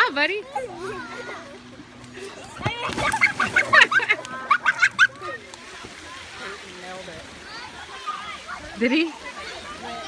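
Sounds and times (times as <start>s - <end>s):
poolside background noise: 0.0s - 10.0s
high-pitched laughter: 0.5s - 5.4s.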